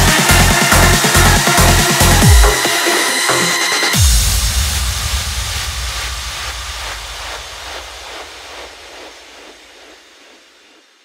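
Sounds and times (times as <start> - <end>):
electronic trance track: 0.0 - 11.0
low rumble: 4.0 - 10.9.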